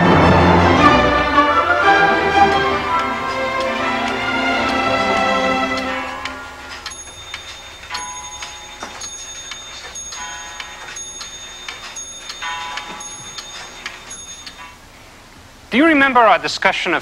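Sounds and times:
pendulum clock ticking: 1.3 - 14.9.

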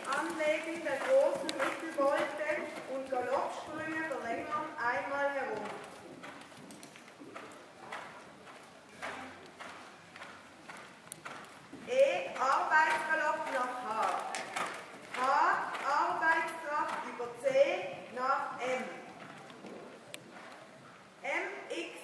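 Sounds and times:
horse hoofbeats on sand: 0.0 - 21.0
person speaking: 11.8 - 14.3, 15.1 - 19.0.

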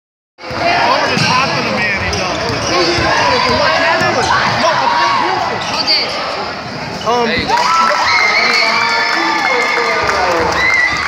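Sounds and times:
players and spectators voices: 0.4 - 11.0.

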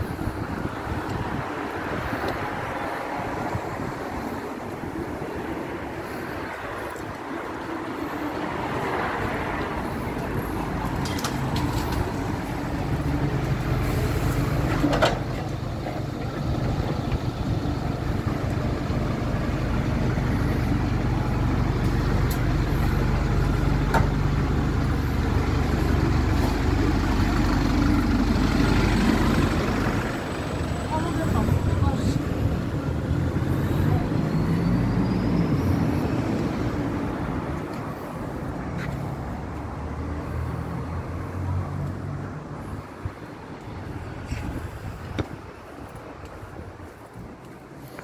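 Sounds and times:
passing road traffic: 0.0 - 48.0
bus diesel engine idling: 2.0 - 39.4.

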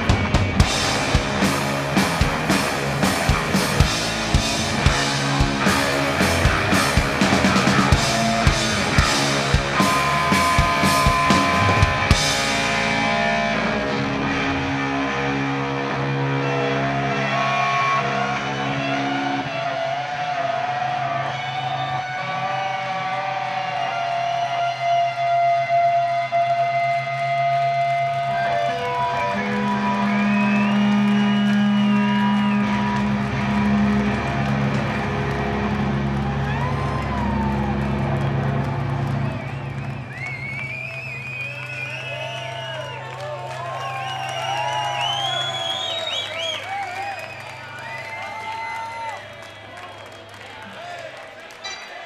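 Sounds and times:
high gliding guitar tones: 0.0 - 19.5
sustained electric guitar notes: 0.0 - 19.5, 25.5 - 40.0.

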